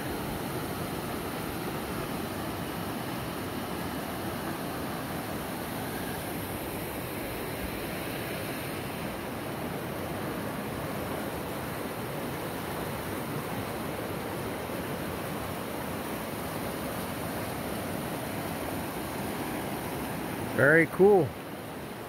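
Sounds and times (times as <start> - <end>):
water rushing over rocks: 0.0 - 22.0.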